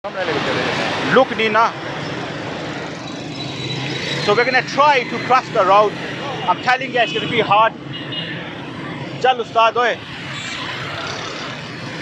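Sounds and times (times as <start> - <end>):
cars passing: 0.0 - 12.0
motorbikes passing: 0.1 - 12.0.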